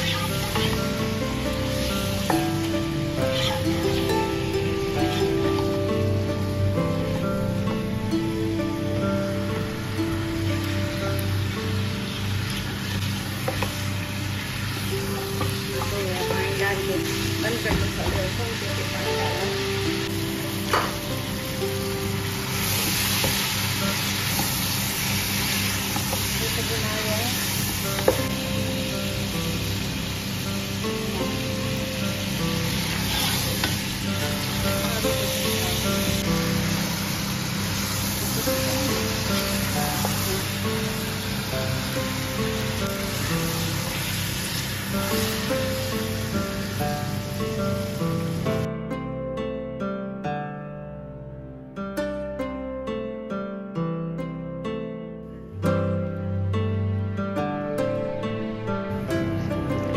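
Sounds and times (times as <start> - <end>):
meat sizzling in hot oil: 0.0 - 48.7
background music: 0.0 - 59.9
spatula stirring in pot: 3.3 - 4.1, 32.8 - 33.9.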